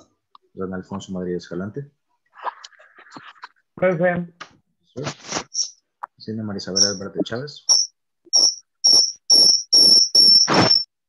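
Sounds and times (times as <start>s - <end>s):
high-pitched insect-like chirps: 6.8s - 7.1s, 7.7s - 10.8s.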